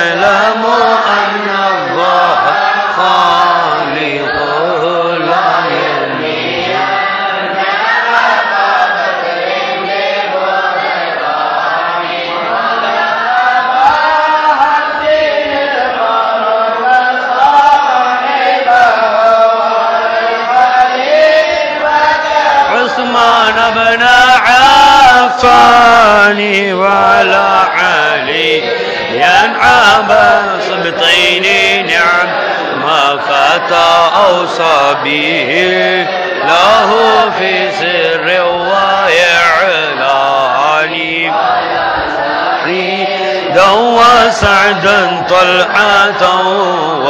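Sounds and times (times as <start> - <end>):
men chanting slow melody: 0.0 - 47.0.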